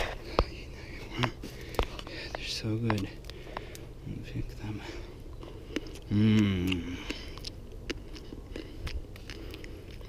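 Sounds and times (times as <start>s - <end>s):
person chewing berries: 0.0s - 10.0s.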